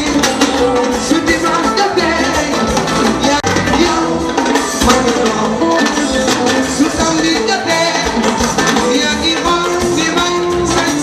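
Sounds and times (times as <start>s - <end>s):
drums and hand percussion: 0.0s - 11.0s
guitar lines: 0.0s - 11.0s
live band playing: 0.0s - 11.0s.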